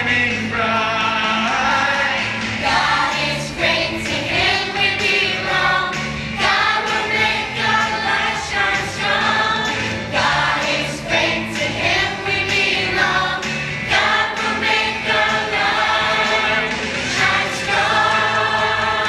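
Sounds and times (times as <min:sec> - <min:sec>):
children singing together: 0:01.7 - 0:19.0.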